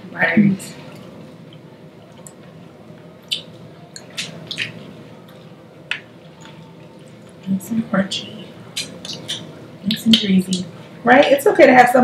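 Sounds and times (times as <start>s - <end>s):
people chewing fried chicken: 0.8s - 7.5s, 8.5s - 9.7s.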